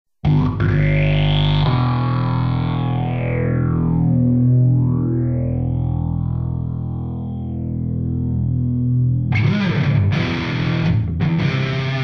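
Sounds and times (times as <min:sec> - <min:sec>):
distorted electric guitar drone: 0:00.2 - 0:12.0.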